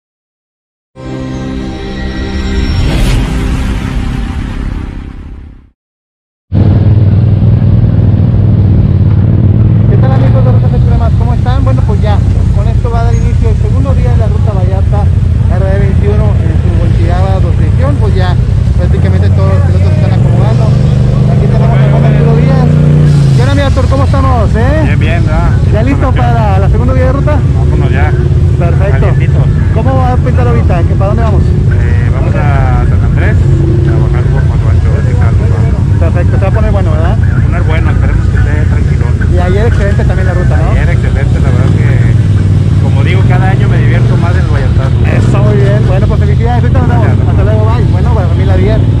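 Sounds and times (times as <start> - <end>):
engine revving: 6.6 - 49.0
engines idling low drone: 6.6 - 49.0
voices chattering: 9.9 - 49.0.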